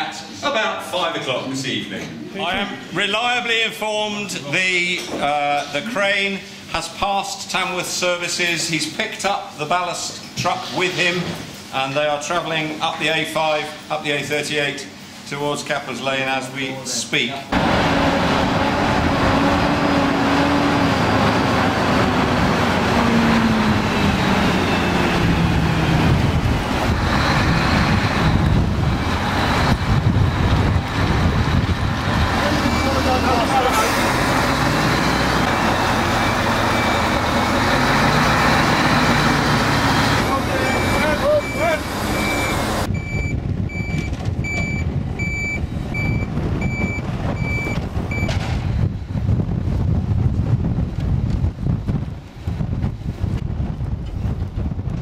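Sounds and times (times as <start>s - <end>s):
diesel engine running: 17.5s - 50.2s
reversing alarm beeping: 23.1s - 26.0s, 27.0s - 30.4s, 32.4s - 38.2s, 40.0s - 48.4s.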